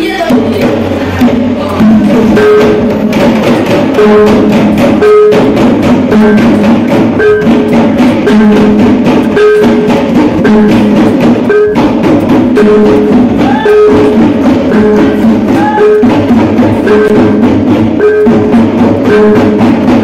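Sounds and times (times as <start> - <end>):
fast hand drum strokes: 0.0 - 20.0
pot gong ringing: 1.8 - 20.0.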